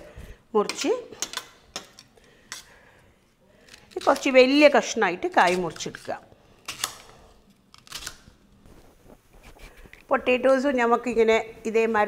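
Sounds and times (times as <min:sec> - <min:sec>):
kitchen utensils clicking: 0:00.6 - 0:02.7.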